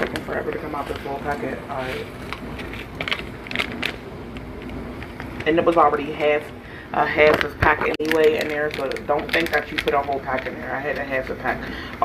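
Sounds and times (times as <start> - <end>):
paper packet rustling and crinkling: 0.0 - 6.3, 7.1 - 11.6.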